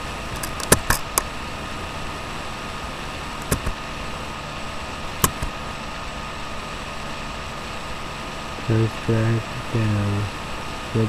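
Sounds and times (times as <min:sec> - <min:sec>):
faint hum: 0:00.0 - 0:11.0
steady background hiss: 0:00.0 - 0:11.0
sharp clicks: 0:03.4 - 0:03.8, 0:05.2 - 0:05.6.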